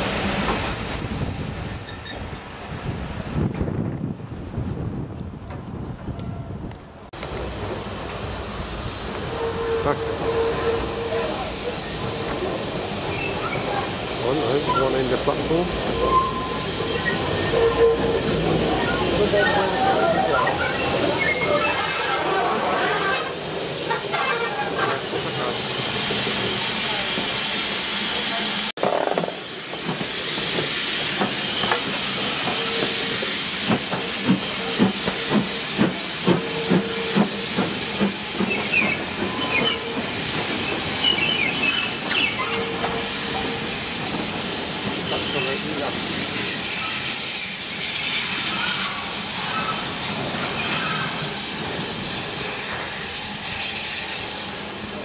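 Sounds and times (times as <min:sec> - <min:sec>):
steam locomotive hissing steam: 0:00.0 - 0:04.2, 0:07.2 - 0:55.0.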